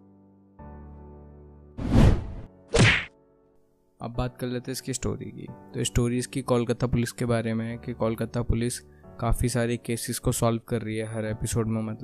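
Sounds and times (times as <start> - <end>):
transition whack sound effect: 1.8 - 3.1.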